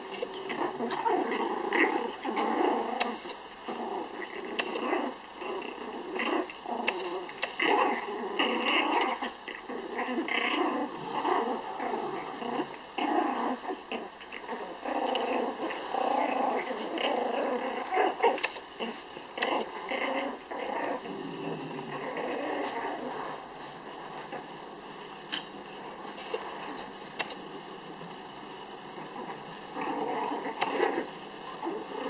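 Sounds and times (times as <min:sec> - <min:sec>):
puppies growling in play: 0:00.0 - 0:32.0.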